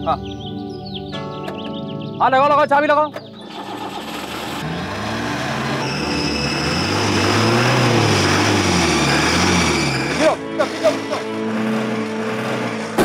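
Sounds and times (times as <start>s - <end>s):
jeep engine turning over: 3.2s - 13.0s.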